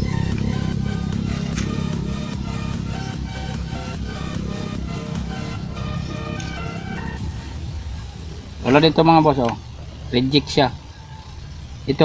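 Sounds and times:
electronic music with bass: 0:00.0 - 0:09.2.

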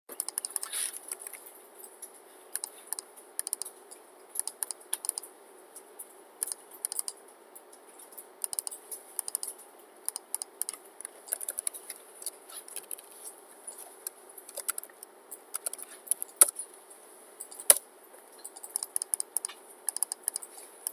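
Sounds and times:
computer keyboard typing: 0:00.1 - 0:03.8, 0:04.4 - 0:05.3, 0:06.4 - 0:13.1, 0:14.0 - 0:16.6, 0:17.4 - 0:20.9.

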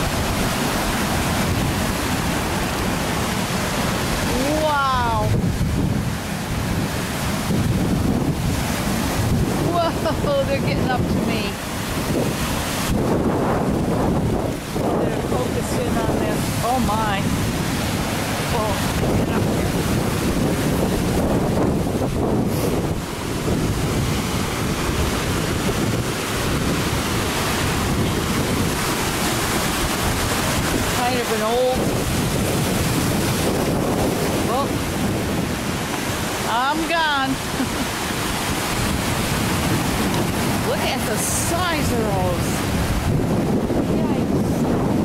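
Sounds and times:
waves breaking on rocky shore: 0:00.0 - 0:45.0
wind buffeting microphone: 0:00.0 - 0:45.0.

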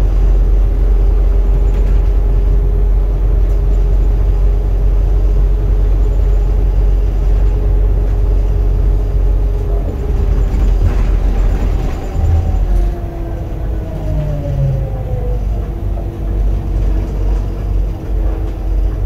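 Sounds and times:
bus engine rumble: 0:00.0 - 0:19.0
steady engine whine: 0:00.0 - 0:19.0.

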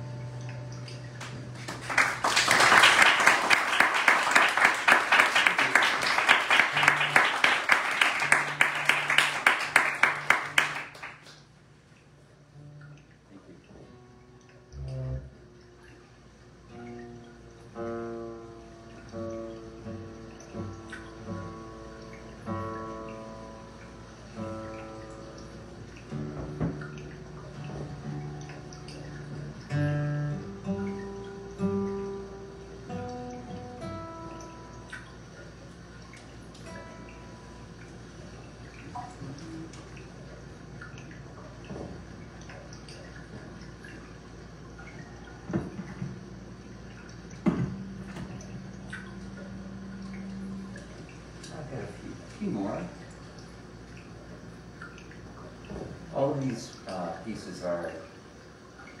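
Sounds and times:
guitar plucked notes: 0:00.0 - 0:01.7, 0:12.4 - 0:15.8, 0:16.7 - 0:35.6, 0:36.6 - 0:37.9
water drips: 0:00.0 - 0:59.0.

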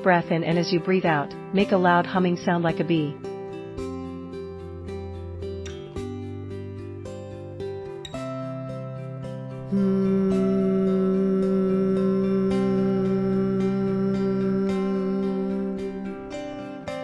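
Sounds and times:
acoustic guitar music: 0:00.0 - 0:17.0
person humming: 0:09.6 - 0:17.0.

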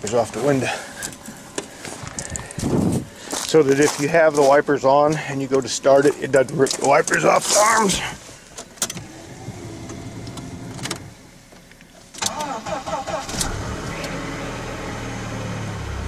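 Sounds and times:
car engine starting and idling: 0:00.0 - 0:16.0.

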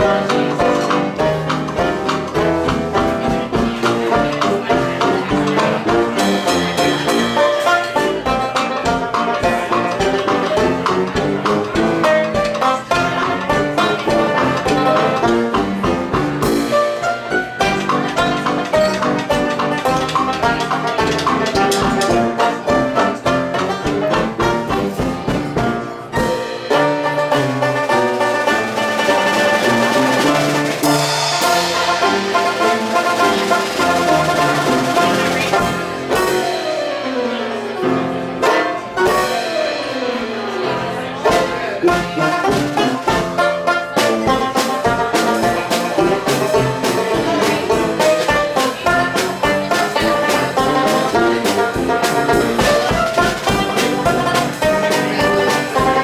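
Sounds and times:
ragtime band playing: 0:00.0 - 0:56.0.

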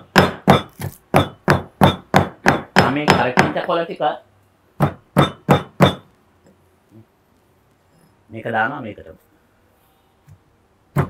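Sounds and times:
pestle pounding in stone mortar: 0:00.0 - 0:03.6, 0:04.8 - 0:06.1.

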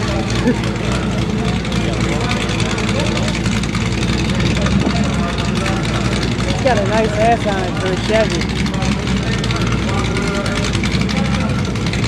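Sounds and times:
pickup truck engines idling: 0:00.0 - 0:12.0.

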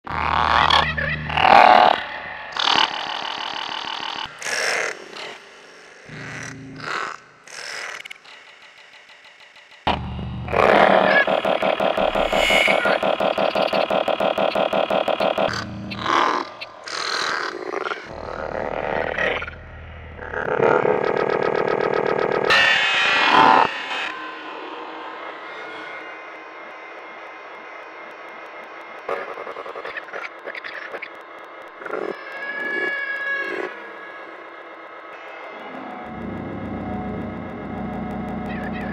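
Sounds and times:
electroacoustic buzzing frog croaks: 0:06.0 - 0:22.6, 0:28.3 - 0:38.9
steady drone: 0:09.9 - 0:17.4, 0:18.0 - 0:26.0, 0:35.6 - 0:38.9.

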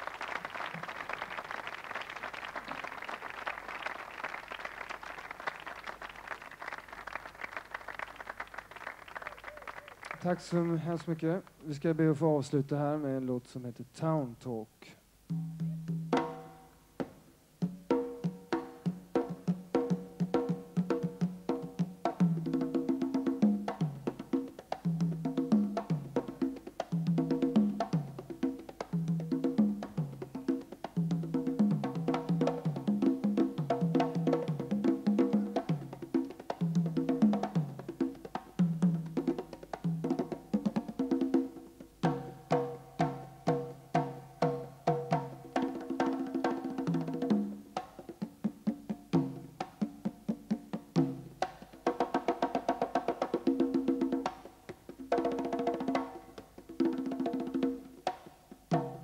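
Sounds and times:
congas played by hand: 0:00.0 - 0:10.9, 0:15.3 - 0:59.0.

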